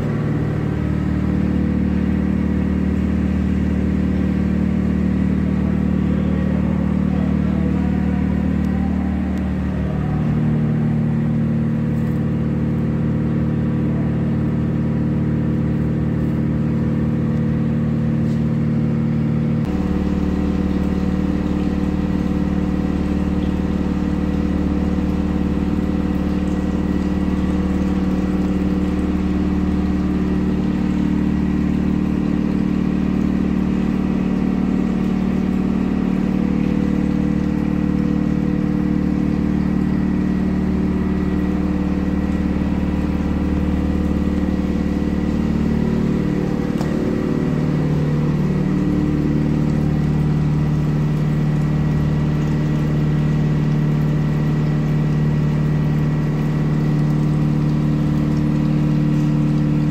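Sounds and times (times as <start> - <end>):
machinery motor hum: 0.0 - 59.9.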